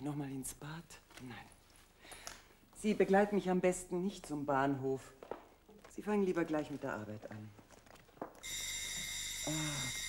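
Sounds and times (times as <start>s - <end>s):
electric doorbell ringing: 8.4s - 10.0s.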